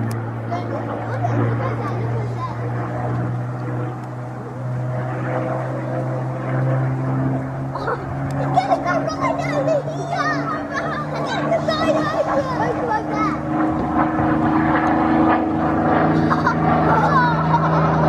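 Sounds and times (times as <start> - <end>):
aircraft engine droning overhead: 0.0 - 18.0
people's voices: 0.4 - 4.8, 7.7 - 14.4.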